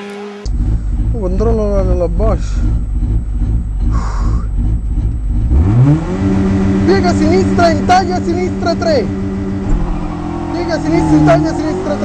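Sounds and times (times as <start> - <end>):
car engine idling and revving: 0.4 - 12.0.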